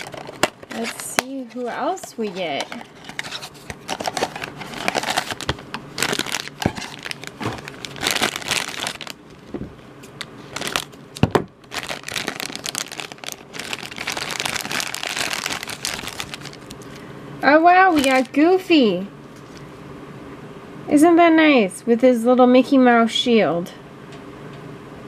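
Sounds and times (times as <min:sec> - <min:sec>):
cardboard box opening: 0:00.0 - 0:08.4
plastic foil bag crinkling: 0:00.0 - 0:17.1, 0:17.8 - 0:18.5.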